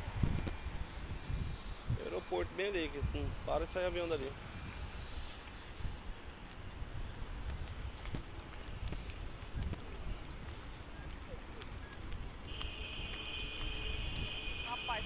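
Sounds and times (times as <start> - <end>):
wind rumbling on microphone: 0.0 - 15.0
vehicle horn blast: 12.5 - 15.0.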